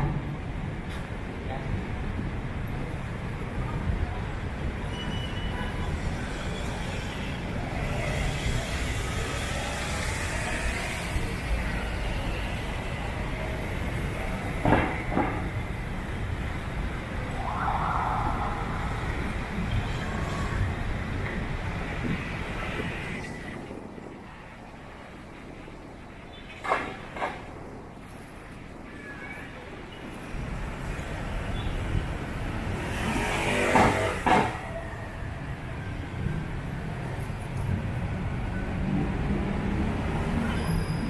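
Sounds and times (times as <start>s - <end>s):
traffic passing: 0.0s - 41.0s
indistinct voices: 16.8s - 21.2s.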